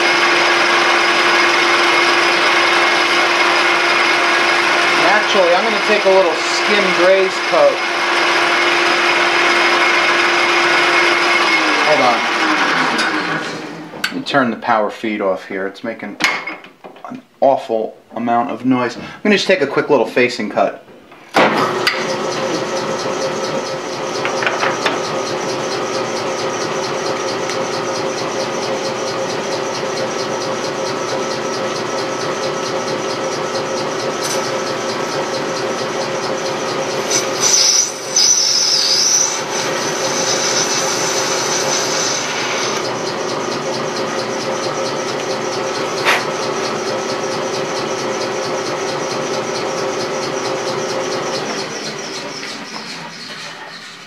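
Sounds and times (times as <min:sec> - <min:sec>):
lathe tool scraping brass: 0:00.0 - 0:13.7, 0:21.8 - 0:54.0
metal lathe humming and whining: 0:00.0 - 0:14.2, 0:21.6 - 0:54.0.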